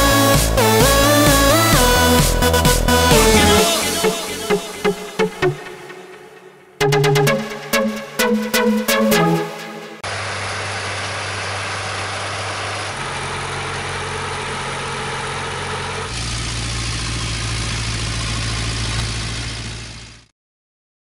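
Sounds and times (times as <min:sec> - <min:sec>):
tractor diesel engines under load: 0:00.0 - 0:05.6, 0:10.0 - 0:20.3.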